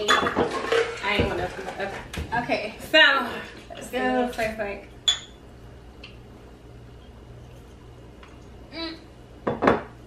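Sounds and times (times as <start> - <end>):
drinking glasses clinking: 5.0 - 5.4.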